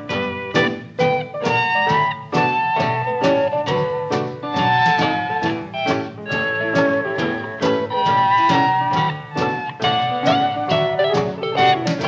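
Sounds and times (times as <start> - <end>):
western swing band playing: 0.0 - 12.0.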